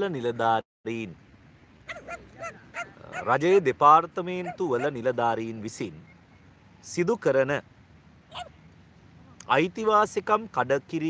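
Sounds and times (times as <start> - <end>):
short bird calls: 1.9 - 3.6.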